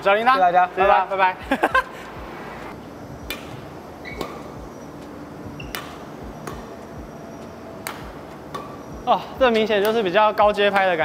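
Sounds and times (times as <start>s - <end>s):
racket hitting shuttlecock: 3.2s - 10.9s.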